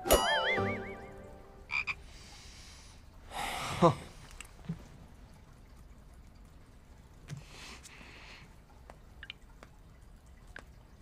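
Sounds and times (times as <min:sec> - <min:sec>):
cartoon hit: 0:00.0 - 0:00.7
wobbling warbling tone: 0:00.0 - 0:01.6.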